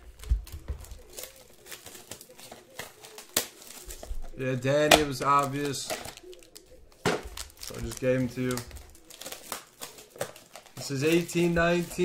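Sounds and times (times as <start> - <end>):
plastic wrap crinkling: 0.0 - 12.0.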